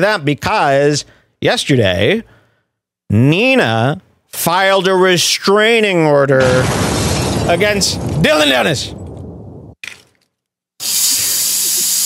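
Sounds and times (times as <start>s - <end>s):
smoke machine hissing: 10.8s - 12.0s.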